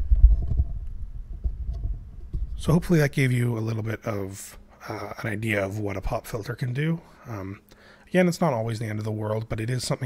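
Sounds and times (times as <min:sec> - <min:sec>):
microphone handling rumble: 0:00.0 - 0:02.8.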